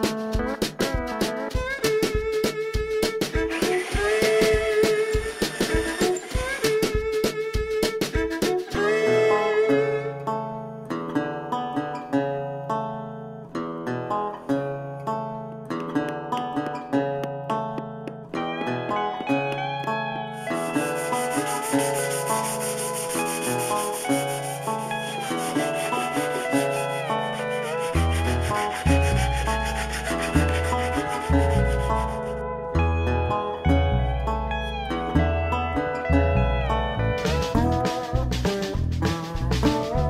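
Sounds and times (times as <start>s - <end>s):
plucked string music with beat: 0.0s - 40.0s
sanding block rasping on wood: 20.4s - 32.3s.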